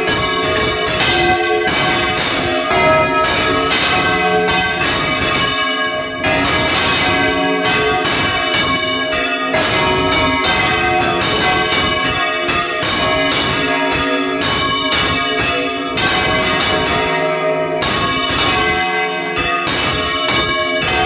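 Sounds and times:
church bells ringing: 0.0 - 21.0.

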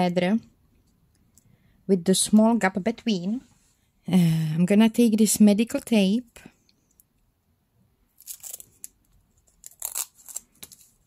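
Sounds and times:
tape tearing rasps: 8.2 - 11.0.

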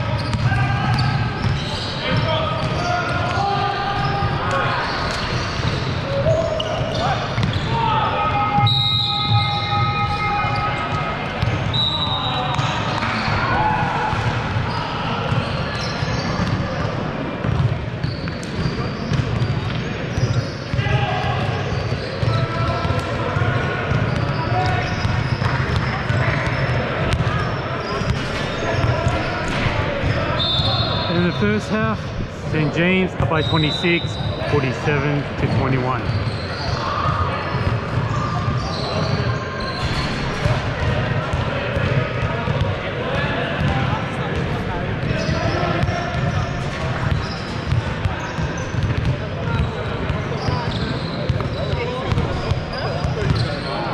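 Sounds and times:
basketball bouncing on court: 0.2 - 3.4, 5.2 - 7.8, 10.9 - 11.8, 14.0 - 30.2, 35.4 - 42.8, 43.6 - 53.6.

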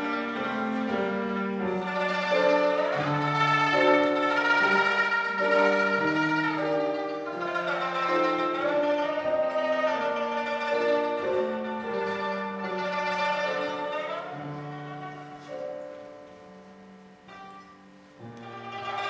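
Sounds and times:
grand piano: 0.0 - 19.0
plucked lute melody: 0.0 - 19.0.

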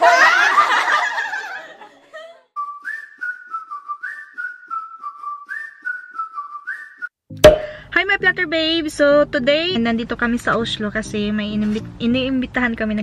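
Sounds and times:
whistled tune: 2.6 - 7.2.

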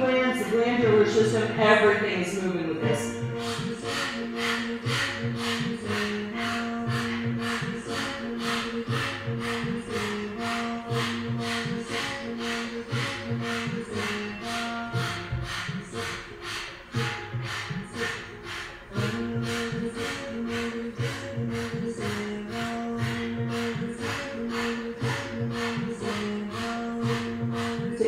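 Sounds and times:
background music with bass line: 0.0 - 28.0
rapid forceful mouth breathing: 3.0 - 28.0.

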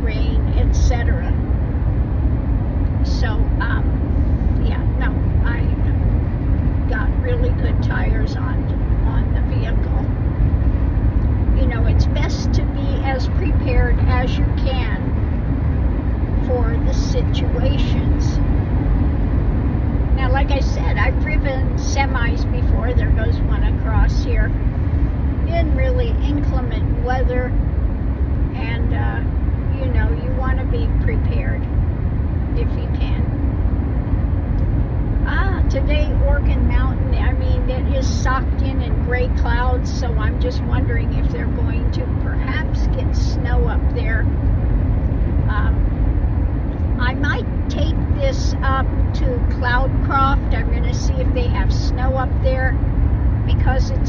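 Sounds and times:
road and tyre noise in car: 0.0 - 54.0.

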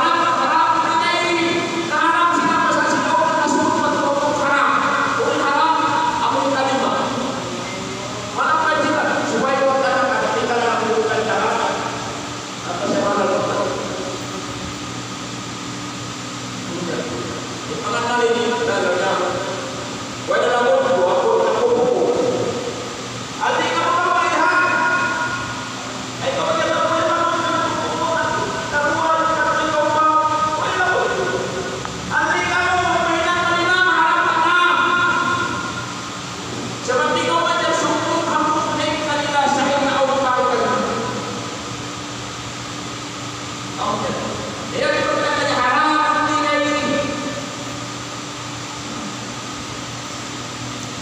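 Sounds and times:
electric fan whirring: 0.0 - 51.0.

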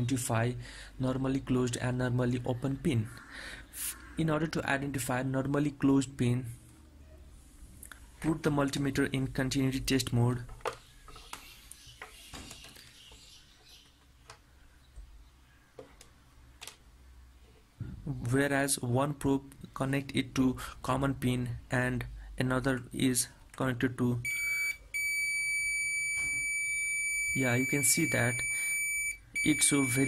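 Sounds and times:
multimeter continuity beep: 24.2 - 30.0.

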